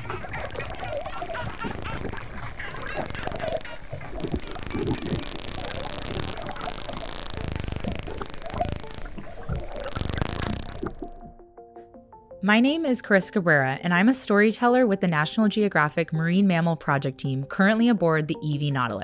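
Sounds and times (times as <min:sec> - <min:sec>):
dolphin whistles: 0:00.0 - 0:11.1
dolphin clicks and chattering: 0:00.0 - 0:11.3.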